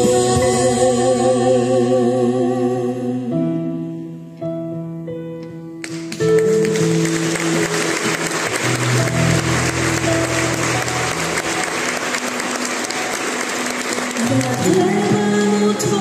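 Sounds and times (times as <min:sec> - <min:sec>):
sustained keyboard and bass notes: 0:04.5 - 0:16.0
audience applause: 0:05.8 - 0:15.6.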